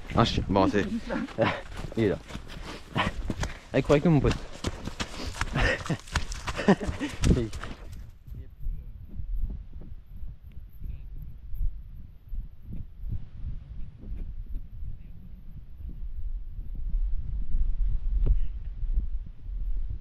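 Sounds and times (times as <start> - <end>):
footsteps on snow: 0.0 - 8.0
person laughing: 0.6 - 1.7, 5.4 - 7.6.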